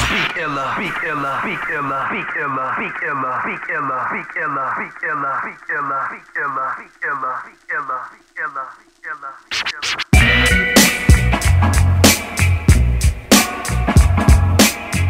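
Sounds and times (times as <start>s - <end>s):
looped chopped voice sample: 0.0s - 10.2s.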